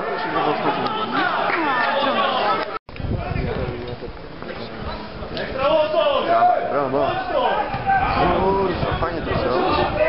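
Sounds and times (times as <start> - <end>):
men talking over one another: 0.0 - 10.0.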